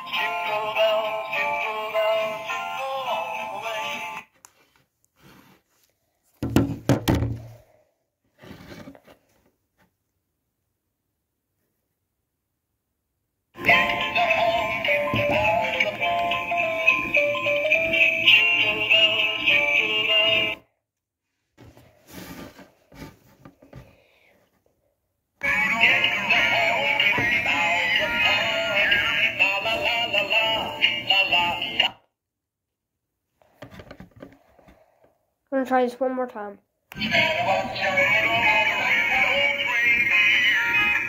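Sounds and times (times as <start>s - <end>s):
tinny electronic toy singing: 13.6s - 20.6s, 25.4s - 32.0s, 37.0s - 41.0s.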